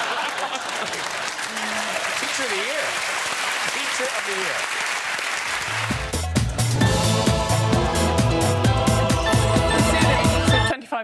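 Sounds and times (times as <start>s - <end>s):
audience laughing: 0.0s - 2.1s
audience applauding: 0.0s - 6.3s.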